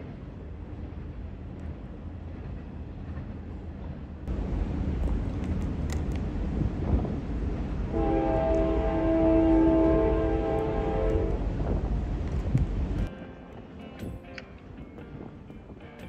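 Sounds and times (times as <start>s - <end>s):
steady low rumble: 0.0s - 8.6s
locomotive air horn: 7.9s - 11.5s.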